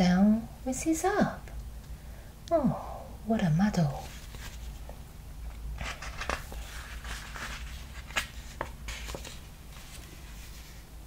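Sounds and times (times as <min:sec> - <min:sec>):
book pages rustling: 0:04.0 - 0:10.8
paper crinkles and taps: 0:05.8 - 0:10.1.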